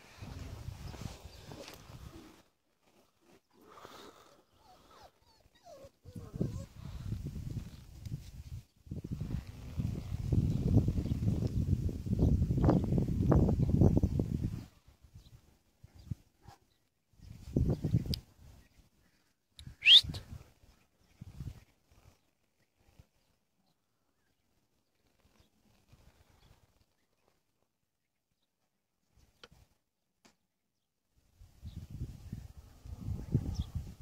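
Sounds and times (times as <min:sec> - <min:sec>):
puppies whimpering: 0:04.6 - 0:06.8.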